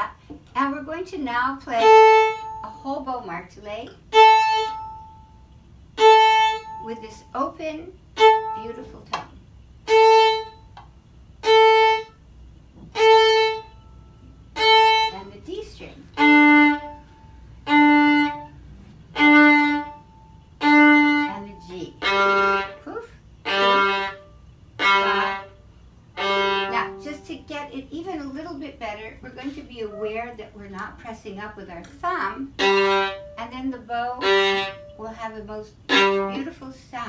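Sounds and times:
violin bowing open strings: 1.6s - 2.8s, 4.0s - 7.3s, 8.1s - 9.0s, 9.8s - 10.8s, 11.4s - 12.2s, 12.8s - 27.5s, 32.5s - 36.6s.

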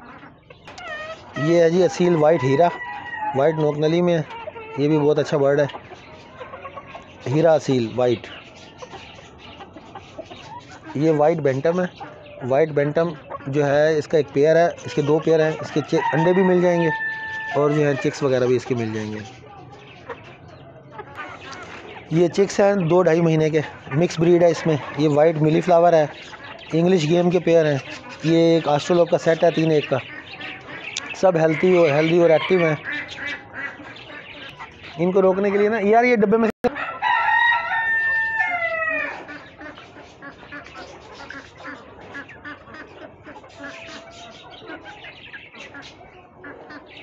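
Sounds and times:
chickens clucking: 0.0s - 47.0s.

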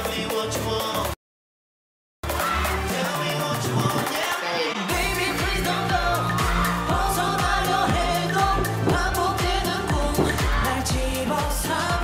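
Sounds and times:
male voice singing: 2.3s - 12.0s
sliding bass notes: 4.9s - 12.0s
steady kick drum: 4.9s - 12.0s.

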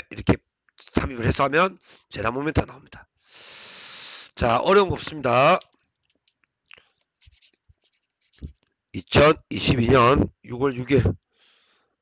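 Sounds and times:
pen scratching on paper: 7.2s - 8.6s.

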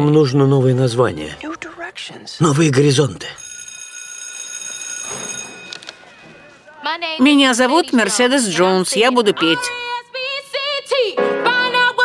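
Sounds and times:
high ringing tone: 3.4s - 6.2s.

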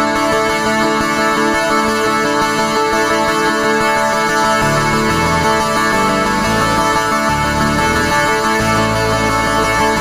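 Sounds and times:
synthesizer chords: 4.0s - 10.0s
deep synth bass: 4.6s - 9.9s.

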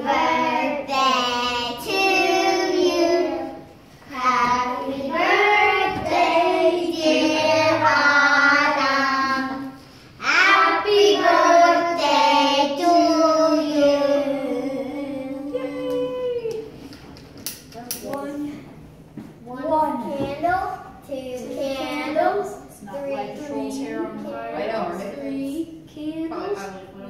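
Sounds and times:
children singing together: 0.0s - 15.8s.

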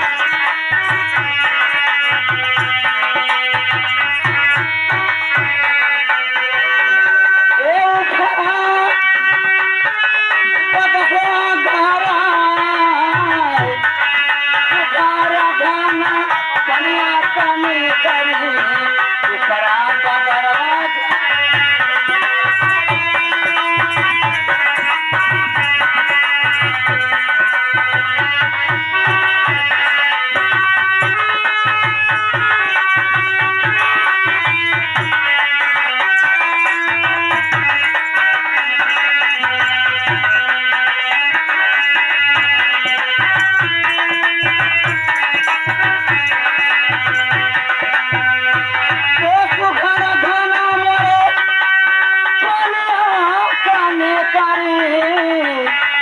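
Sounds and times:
hand drum beating: 0.0s - 5.8s, 20.6s - 51.4s
held melody line: 0.0s - 55.7s.

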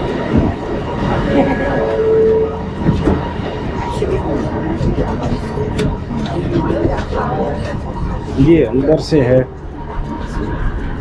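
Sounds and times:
murmuring voices: 0.0s - 11.0s
train humming: 0.0s - 11.0s
short tone: 1.0s - 3.5s.

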